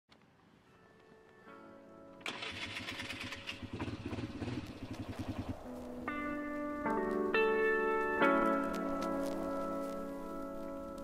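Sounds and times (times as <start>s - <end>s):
faint background music: 0.1s - 11.0s
electric starter cranking: 2.2s - 5.5s
engine running: 2.2s - 5.9s.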